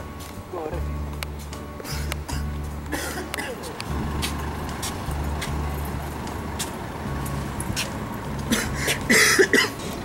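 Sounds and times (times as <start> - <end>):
low uneven street rumble: 0.0 - 10.0.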